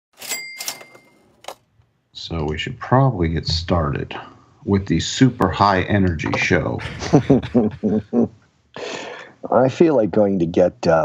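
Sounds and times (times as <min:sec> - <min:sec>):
cash register bell ding: 0:00.1 - 0:01.6.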